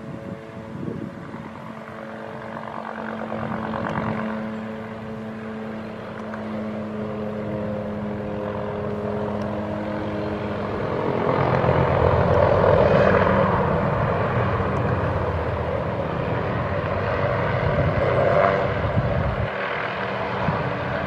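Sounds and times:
helicopter hovering: 0:00.0 - 0:21.0.

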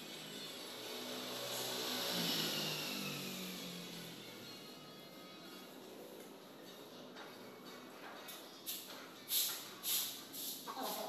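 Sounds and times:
vehicle passing by: 0:00.0 - 0:08.0
background music: 0:00.9 - 0:11.0.

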